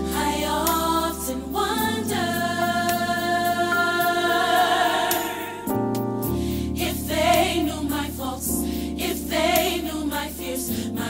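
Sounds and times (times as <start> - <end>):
sustained chords: 0.0 - 8.2.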